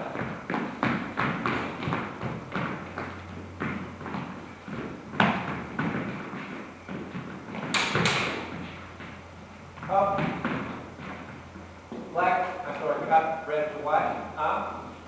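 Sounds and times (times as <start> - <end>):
footsteps and stamps on hard floor: 0.0 - 12.2.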